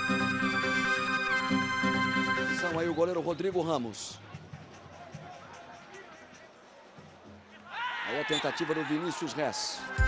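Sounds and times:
faint stadium crowd noise: 0.0 - 10.0.

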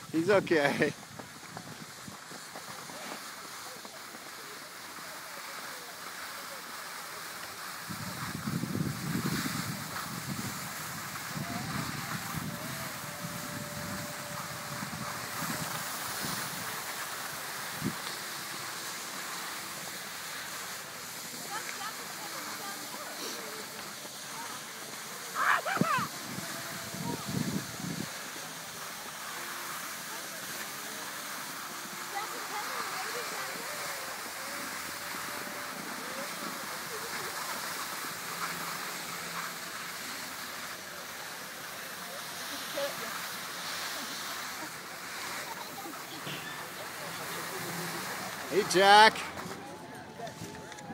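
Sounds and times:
skis hissing over snow: 0.0 - 50.6
faint voices: 1.5 - 50.9.

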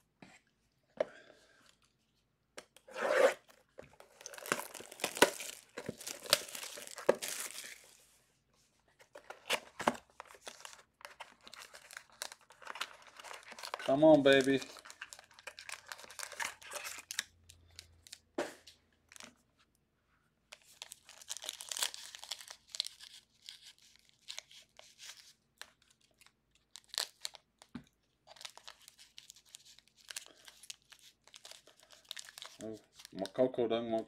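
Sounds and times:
foil wrapper crinkling and tearing: 4.0 - 8.0, 9.1 - 18.2, 20.6 - 33.4.

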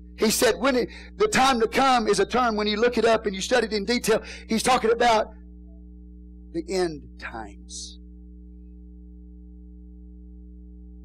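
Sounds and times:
low drone of held tones: 0.0 - 11.0.

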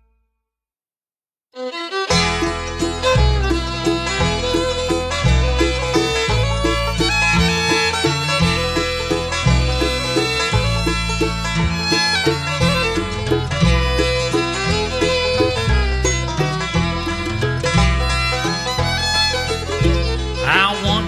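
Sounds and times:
fiddle: 1.6 - 21.0
guitar: 1.6 - 21.0
mandolin: 1.6 - 21.0
banjo: 1.7 - 21.0
walking bass line: 2.0 - 21.0.

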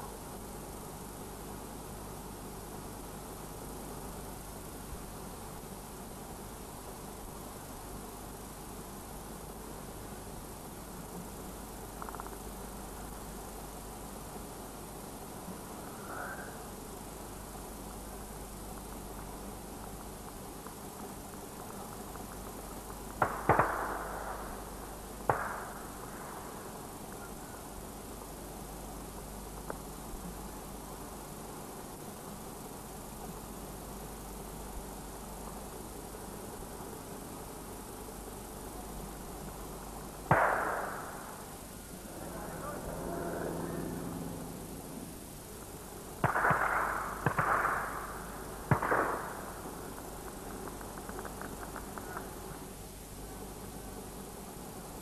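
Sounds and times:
faint light ticks: 29.6 - 29.8
gunshots with echo: 40.3 - 41.4, 46.2 - 49.6.

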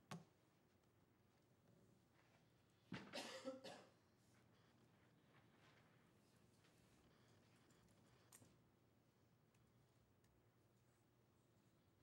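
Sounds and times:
person coughing faintly: 3.0 - 4.0.

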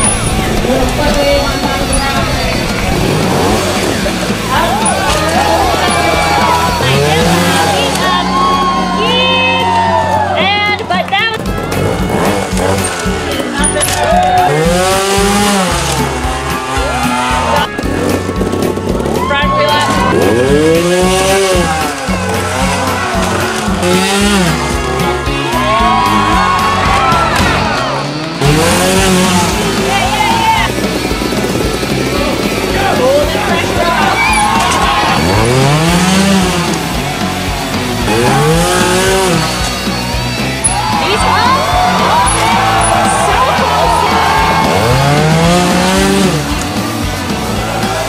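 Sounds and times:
background music: 0.0 - 48.0
motorcycle engines revving: 0.0 - 48.0.

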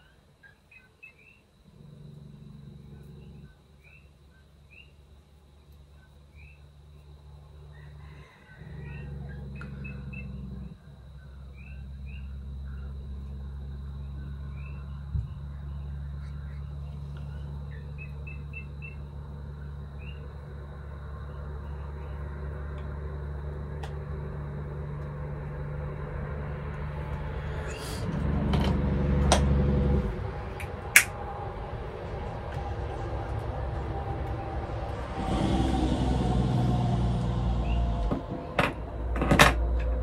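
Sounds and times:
steady low room hum: 0.0 - 40.0
vehicle driving past: 7.1 - 40.0.

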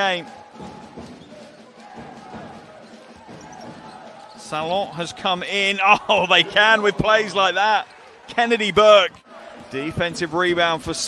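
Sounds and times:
murmur of arena crowd: 0.0 - 11.0.

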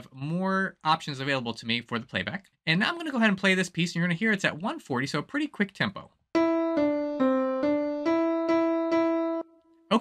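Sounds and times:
piano melody: 6.4 - 9.9.

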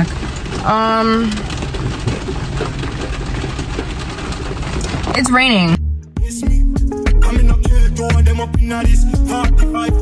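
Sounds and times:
rain on car roof: 0.0 - 10.0.

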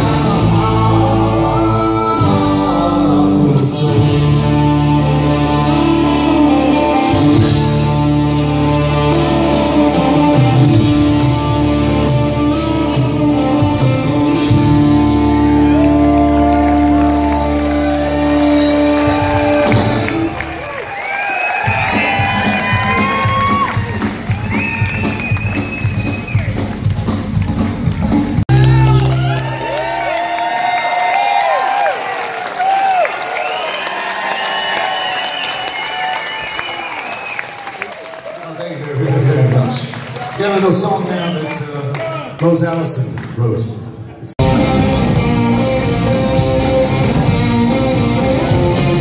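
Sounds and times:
live rock band playing: 0.0 - 20.7, 21.6 - 30.2, 44.4 - 49.0
audience cheering and whooping: 15.2 - 26.8, 28.5 - 38.6
audience applauding: 15.3 - 43.7.

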